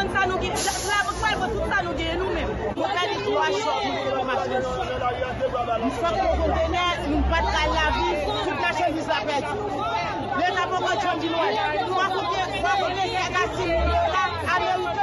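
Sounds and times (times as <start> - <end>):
people talking loudly at once: 0.0 - 15.0.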